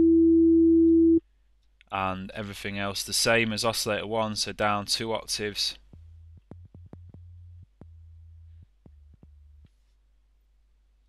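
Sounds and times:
low sine-wave synth tones: 0.0s - 1.2s.

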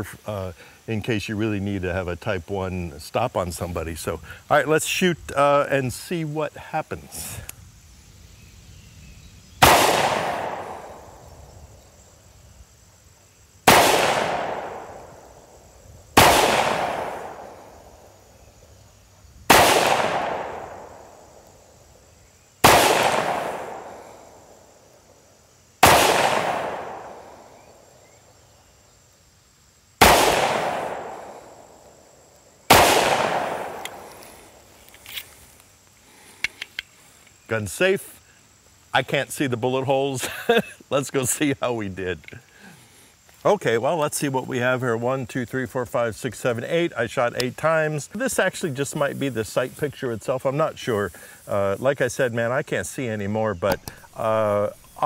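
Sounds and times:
pistol shots echoing: 9.6s - 11.1s, 13.7s - 15.2s, 16.2s - 17.6s, 19.5s - 21.0s, 22.6s - 24.0s, 25.8s - 27.4s, 30.0s - 31.5s, 32.7s - 34.1s.

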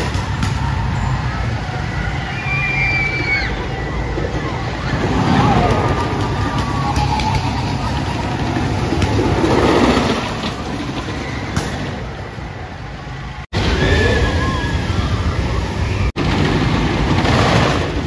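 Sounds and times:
people's voices: 0.0s - 12.7s
roller coaster rumbling on track: 0.0s - 18.0s.

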